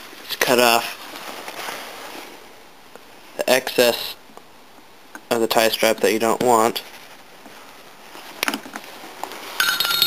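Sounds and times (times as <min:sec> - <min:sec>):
rapid light clinks: 0:09.6 - 0:10.0.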